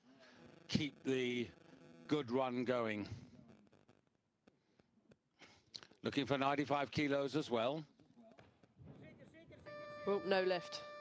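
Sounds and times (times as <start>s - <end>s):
electronic beep: 9.6s - 11.0s.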